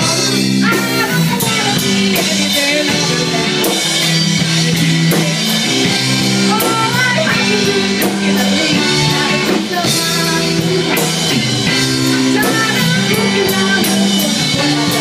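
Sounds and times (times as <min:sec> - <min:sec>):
live rock band playing: 0:00.0 - 0:15.0
woman singing: 0:00.0 - 0:15.0.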